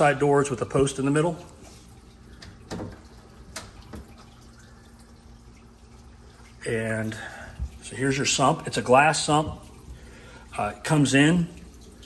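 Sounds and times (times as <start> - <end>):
low steady hum: 0.0 - 12.0
water trickling and dripping: 0.0 - 12.0.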